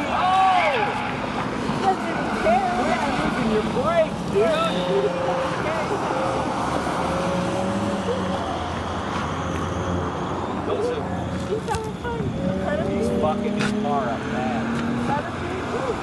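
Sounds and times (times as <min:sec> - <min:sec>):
outdoor rush: 0:00.0 - 0:16.0
distant car engine on racetrack: 0:00.8 - 0:16.0.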